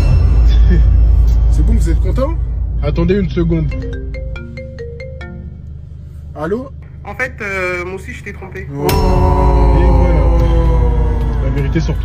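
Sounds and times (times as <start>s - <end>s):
low hum: 0.0s - 12.0s
marimba-like phone ringtone: 3.7s - 5.6s.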